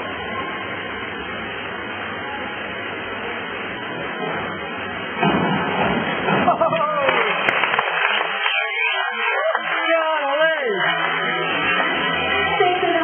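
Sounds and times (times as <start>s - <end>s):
crowded indoor pool hall noise: 0.0s - 13.0s.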